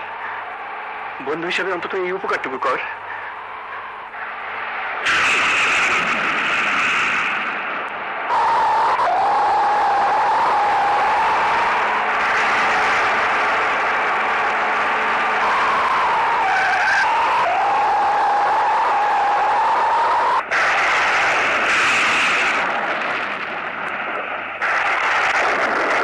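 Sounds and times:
high wavering whine: 0.0s - 26.0s
loud vehicle noise: 2.7s - 26.0s.

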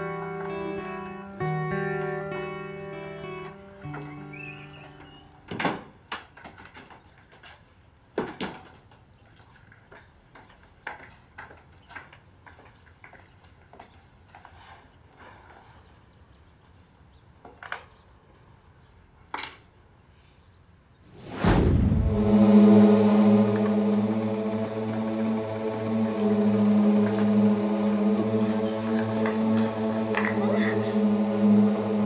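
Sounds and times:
loud whoosh: 21.1s - 30.2s
electronic drone with deep hum: 21.4s - 32.0s.

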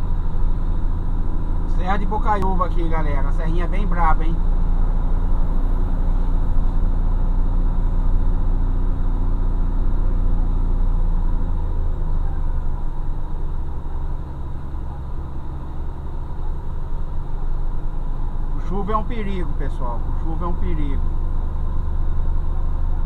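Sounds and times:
vehicle engine and road noise: 0.0s - 23.0s.

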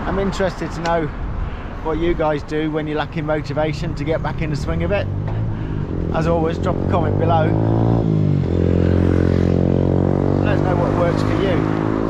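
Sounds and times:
engine running: 3.2s - 12.0s.

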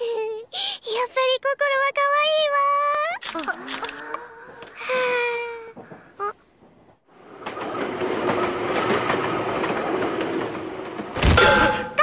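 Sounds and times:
train passing rumble: 6.6s - 11.2s.

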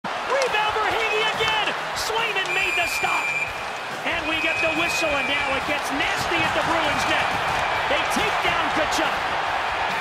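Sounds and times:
arena noise: 0.0s - 10.0s
referee's whistle: 2.4s - 3.6s, 4.2s - 5.6s.

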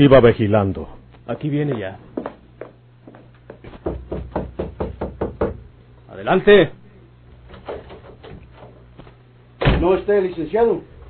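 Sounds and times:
knocking on a door: 3.6s - 5.7s.

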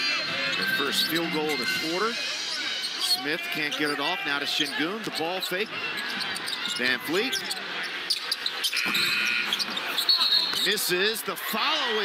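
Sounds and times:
arena crowd noise: 0.0s - 12.0s
sneaker squeak on court: 8.1s - 10.7s.

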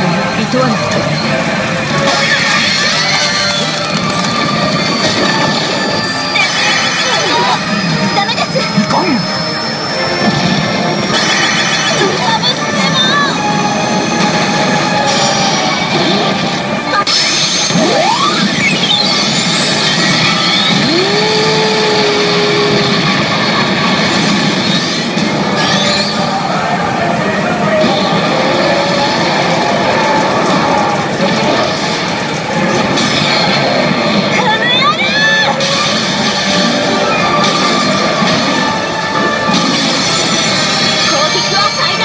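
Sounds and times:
gaming machine music and sound effects: 0.0s - 42.0s
rising pitch sweep: 17.7s - 23.7s.

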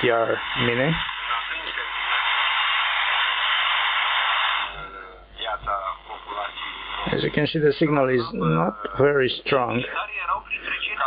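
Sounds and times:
thin noisy radio voice: 0.0s - 2.1s, 4.7s - 11.0s
radio static hissing: 0.0s - 11.0s.

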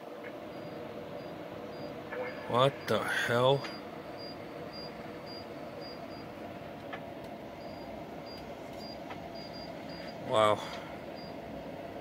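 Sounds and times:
room hum and hiss: 0.0s - 12.0s.

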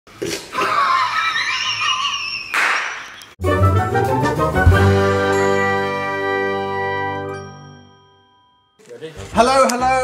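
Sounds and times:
intro music: 3.4s - 7.9s.

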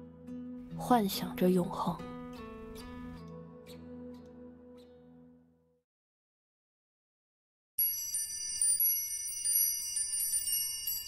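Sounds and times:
high bell-like chimes: 7.8s - 11.0s.

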